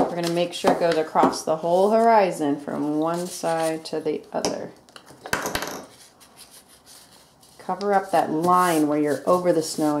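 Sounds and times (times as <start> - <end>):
paper rustling and rubbing: 3.1 - 3.9, 5.9 - 10.0.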